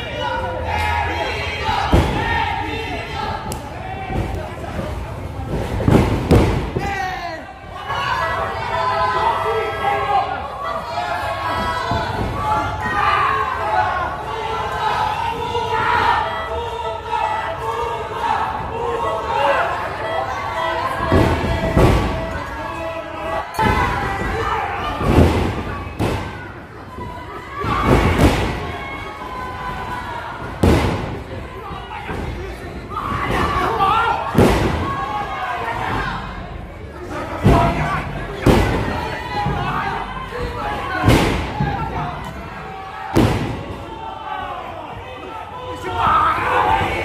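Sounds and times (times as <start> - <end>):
voices shouting: 0.0 - 47.0.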